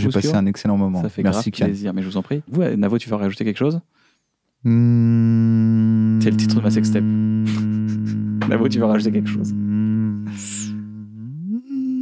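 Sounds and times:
man humming: 4.6 - 12.0.

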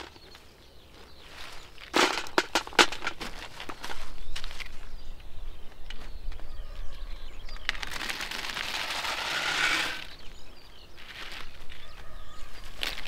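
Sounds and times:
walnuts rattling from bucket: 1.8 - 4.6, 7.5 - 10.4, 11.0 - 13.0.

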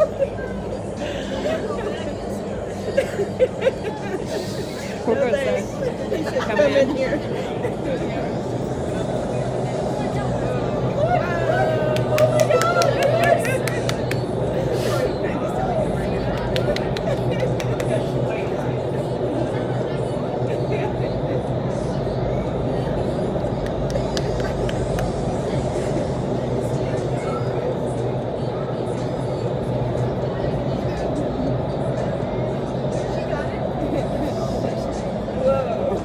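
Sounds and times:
constant low hum: 0.0 - 36.0
wind tunnel airflow roar: 0.0 - 36.0.

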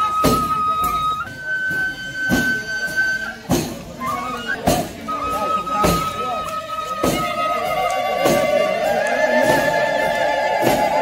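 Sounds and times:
drum strokes: 0.0 - 11.0
reedy wind instrument note: 0.0 - 11.0.

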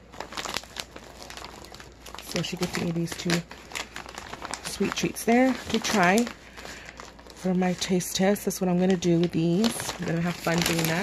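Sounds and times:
plastic snack bag crinkling: 0.0 - 11.0.

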